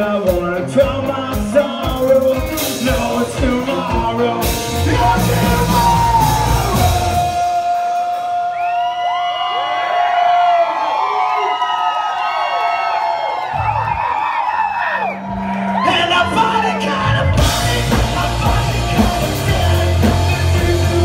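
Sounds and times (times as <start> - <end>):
rock band playing live: 0.0 - 8.9, 15.2 - 21.0
vocals: 0.0 - 9.0, 15.7 - 21.0.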